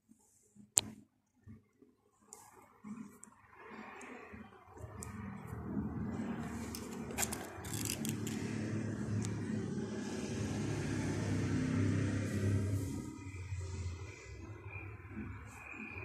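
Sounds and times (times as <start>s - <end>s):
low mechanical rumble: 3.6s - 14.8s.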